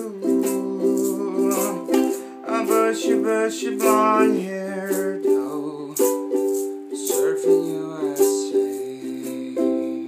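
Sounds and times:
ukulele strummed: 0.0s - 10.0s.

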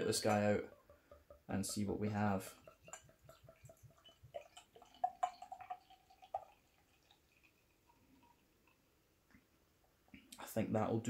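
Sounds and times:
beer glugging from glass bottle: 0.0s - 8.3s.

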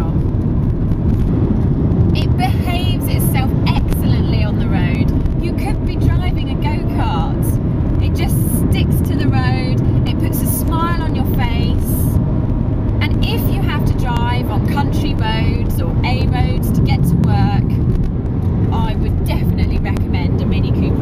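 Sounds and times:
car engine and road noise: 0.0s - 21.0s
woman speaking: 2.2s - 12.2s, 13.0s - 17.8s, 18.7s - 21.0s.

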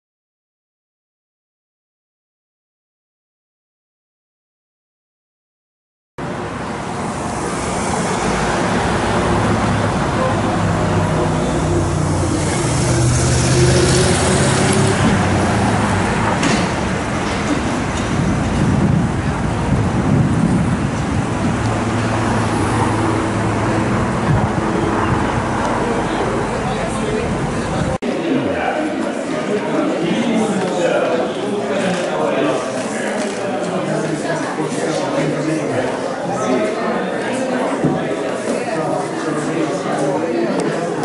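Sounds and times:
engines humming: 6.2s - 28.0s
road noise from passing cars: 6.2s - 28.1s.

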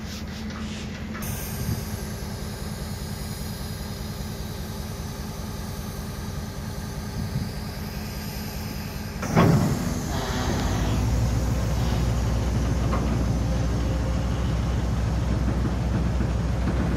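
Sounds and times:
freight wagon wheels rumbling on rails: 9.2s - 16.9s.

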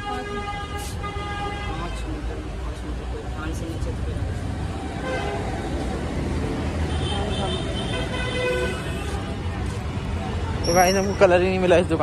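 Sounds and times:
vehicle horn: 0.0s - 2.1s, 6.9s - 9.4s
traffic engine rumble: 0.0s - 12.0s.

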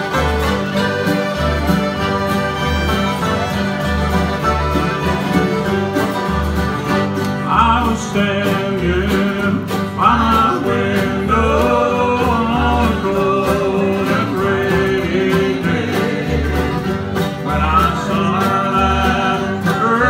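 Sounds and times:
bass line: 0.0s - 20.0s
guitar: 0.0s - 20.0s
string band playing bluegrass: 0.0s - 20.0s.

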